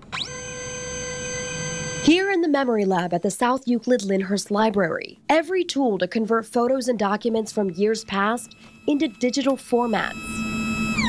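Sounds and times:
scanner motor whine: 0.0 - 2.2, 6.9 - 11.0.

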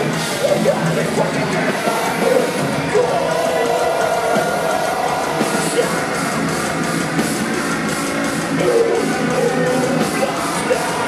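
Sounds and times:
loud live metal band: 0.0 - 11.0.

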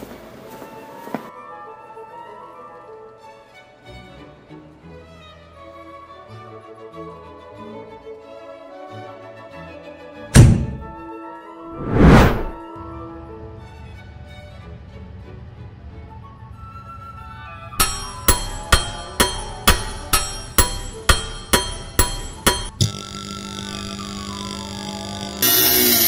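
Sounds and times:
soft background music: 0.0 - 11.7, 12.6 - 22.6
cartoon thud: 10.4 - 11.0.

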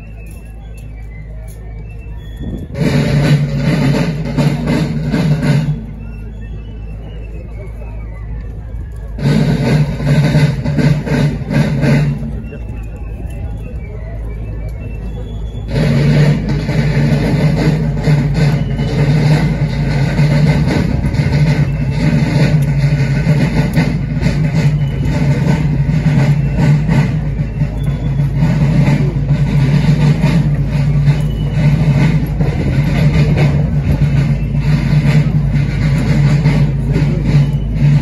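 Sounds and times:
parade drums beating: 0.0 - 38.0
street noise: 0.0 - 38.0.

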